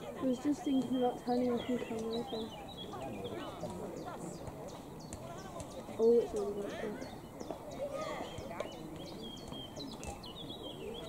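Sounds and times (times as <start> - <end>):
distant voices talking: 0.0 - 11.0.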